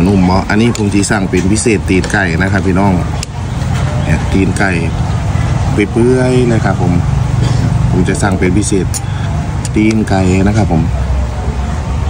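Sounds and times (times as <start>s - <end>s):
man speaking: 0.0s - 3.2s, 4.0s - 11.0s.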